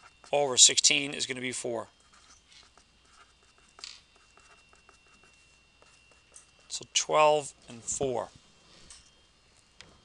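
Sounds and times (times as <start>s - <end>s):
pen scratching on paper: 0.0s - 0.7s, 2.0s - 6.9s.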